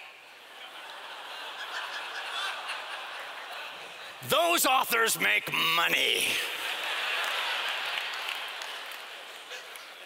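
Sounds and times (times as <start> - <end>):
audience laughing: 0.4 - 4.2, 6.2 - 10.0.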